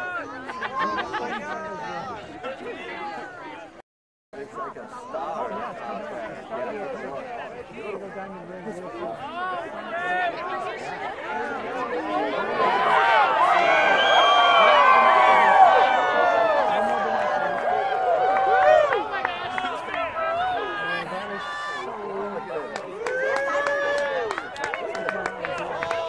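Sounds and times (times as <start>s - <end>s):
crowd cheering and shouting: 9.2s - 26.0s.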